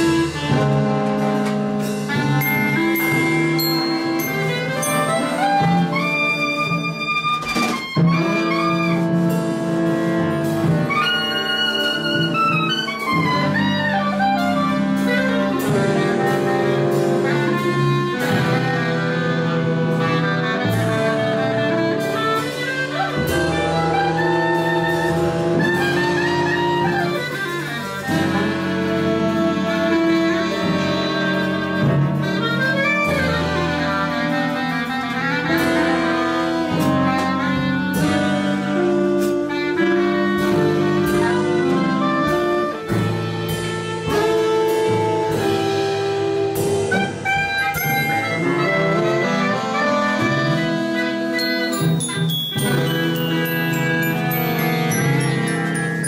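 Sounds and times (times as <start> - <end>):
jazz saxophone ensemble: 0.0 - 56.0
sharp percussive hits: 2.4 - 6.2.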